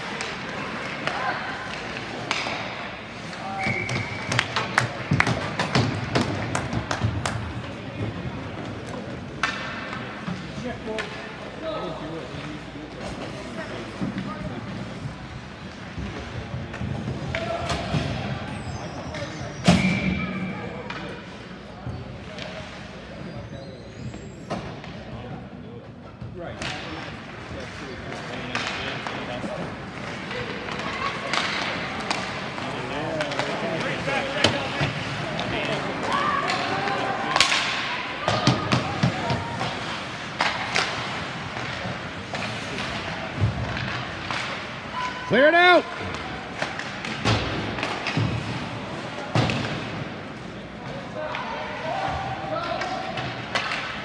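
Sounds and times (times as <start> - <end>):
knocks of puck sticks and boards: 0.0 - 11.6, 26.5 - 45.0, 45.6 - 54.0
spectators chatting: 0.0 - 54.0.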